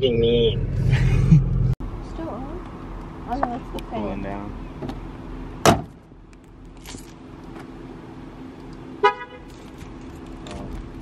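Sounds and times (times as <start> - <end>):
car horn toot: 0.0 - 0.7, 9.0 - 9.5
low steady car hum: 0.0 - 11.0.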